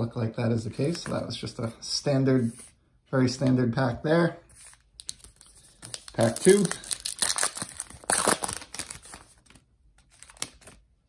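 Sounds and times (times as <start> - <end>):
wrapper tearing and crinkling: 5.0 - 10.8.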